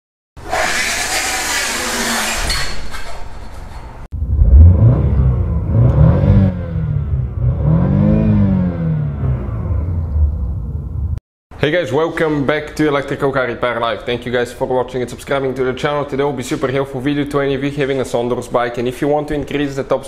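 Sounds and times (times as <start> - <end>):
car engine revving: 4.2 - 11.2.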